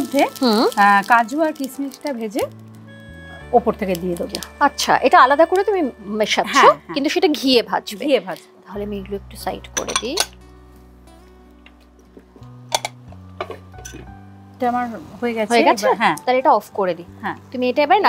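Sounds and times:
glass lid clinking on metal pan: 9.8s - 10.4s.

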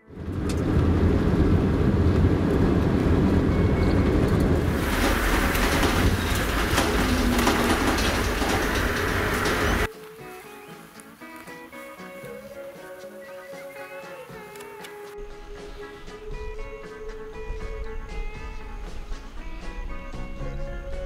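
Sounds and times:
vehicle on dirt road rumble: 0.0s - 9.9s
quiet music: 9.4s - 21.0s.

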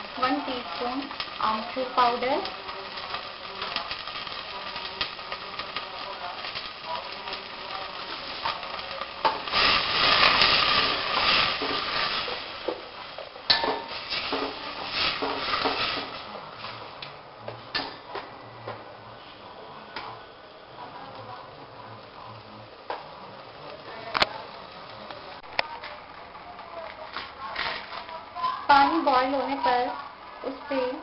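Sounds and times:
spices sizzling in hot oil: 0.0s - 31.0s.

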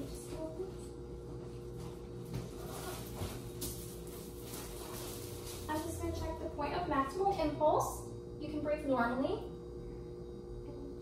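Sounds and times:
low room hum: 0.0s - 11.0s
paper crinkling on exam table: 2.5s - 5.9s.

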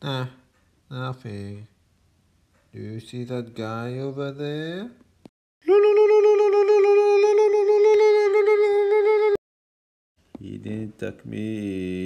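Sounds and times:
long steady cartoon tone: 5.6s - 9.4s.

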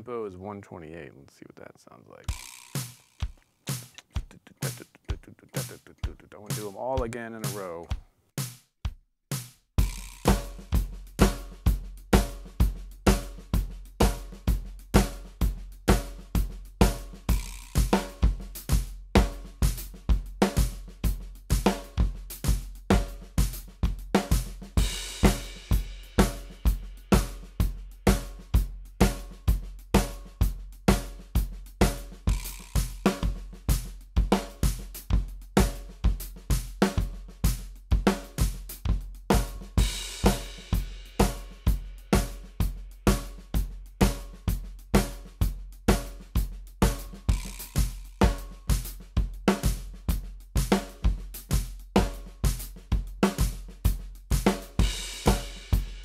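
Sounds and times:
drum kit playing: 2.2s - 56.0s.

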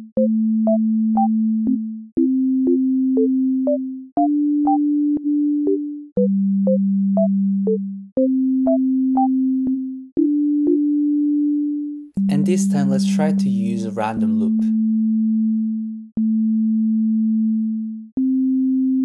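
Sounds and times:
synthesizer chord progression: 0.0s - 19.0s.

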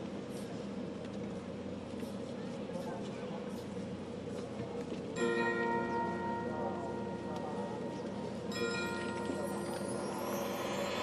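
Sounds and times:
steady background noise: 0.0s - 11.0s
bell-like chime ringing: 5.2s - 11.0s.

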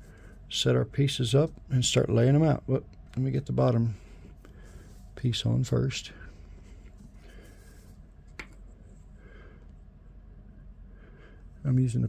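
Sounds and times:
low steady hum: 0.0s - 12.0s
faint rubbing and handling: 3.6s - 9.2s.

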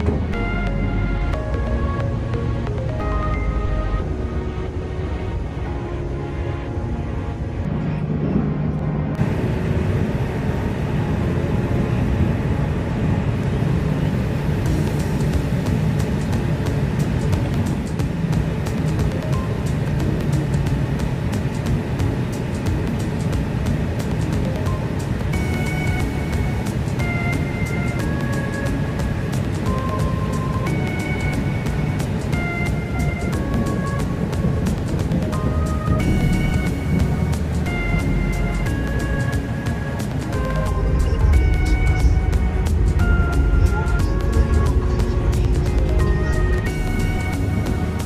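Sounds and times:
music playing: 0.0s - 48.0s
train rumbling in motion: 0.0s - 48.0s.

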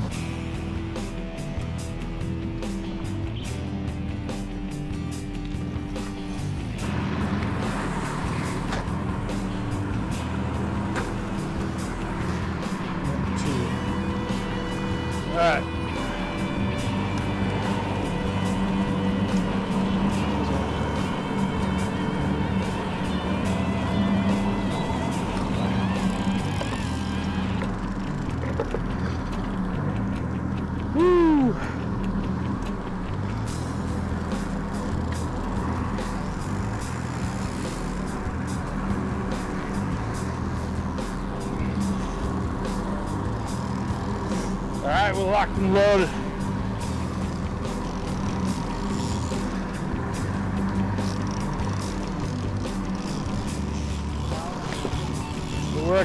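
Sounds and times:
background music: 0.0s - 56.0s
outboard engines humming: 0.0s - 56.0s.

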